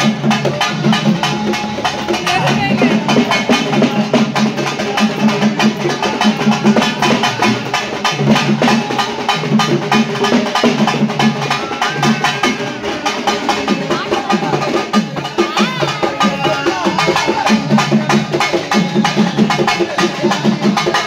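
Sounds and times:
fast folk drumming: 0:00.0 - 0:21.0
voices: 0:00.0 - 0:21.0.

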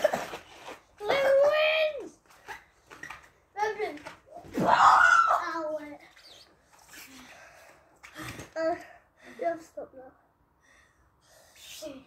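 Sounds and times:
boy shouting: 0:01.0 - 0:02.1, 0:04.6 - 0:06.0.

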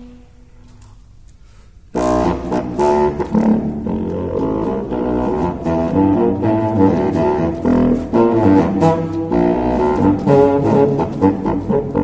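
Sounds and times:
contrabassoon playing low notes: 0:00.0 - 0:00.8, 0:01.9 - 0:12.0.

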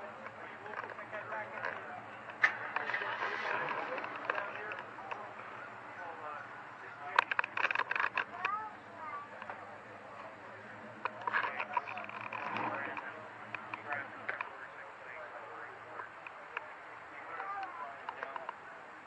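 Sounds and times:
people talking indistinctly: 0:00.0 - 0:19.0.

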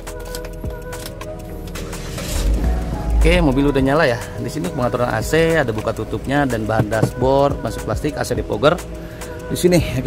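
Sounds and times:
car engine idling: 0:01.4 - 0:06.6.

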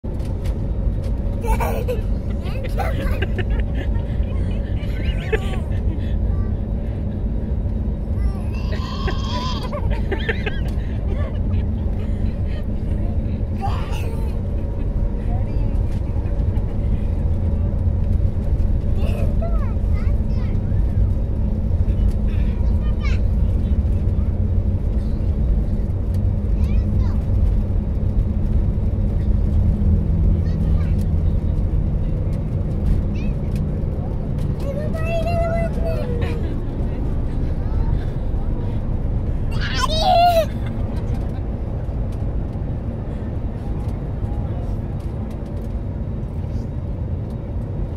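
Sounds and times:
jet engine cabin rumble and hum: 0:00.0 - 0:47.9.

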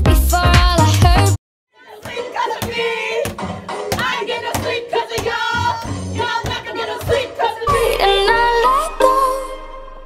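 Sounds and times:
group of voices chanting: 0:01.8 - 0:08.4
hands pounding on door: 0:02.0 - 0:05.5.

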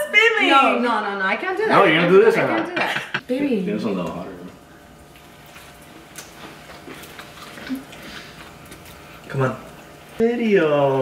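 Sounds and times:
people chewing food: 0:03.9 - 0:11.0.

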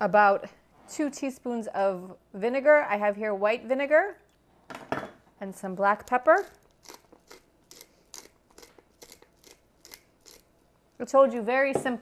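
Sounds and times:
pepper mill grinding crunches: 0:06.0 - 0:11.2.

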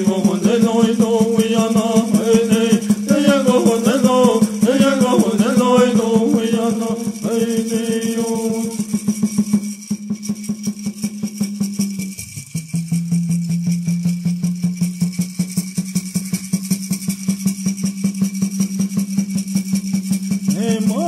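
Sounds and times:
people singing verses: 0:00.0 - 0:08.8
water drum fast beat: 0:00.0 - 0:21.0
gourd rattle: 0:13.6 - 0:21.0.

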